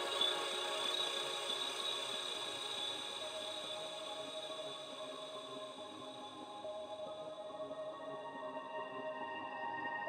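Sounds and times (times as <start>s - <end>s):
ambient music with sustained tones: 0.0s - 10.0s.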